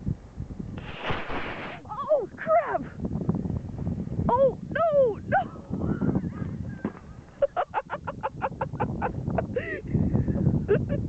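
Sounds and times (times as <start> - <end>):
rocket motor rushing hiss: 0.8 - 2.0.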